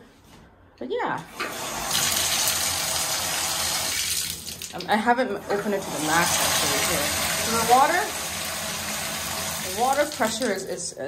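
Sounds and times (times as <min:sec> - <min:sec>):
bathtub faucet running: 0:01.3 - 0:10.8.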